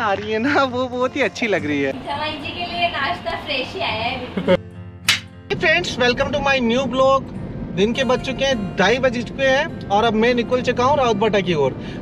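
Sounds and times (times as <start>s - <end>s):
background music: 0.0s - 12.0s
clapperboard snap: 5.1s - 5.3s.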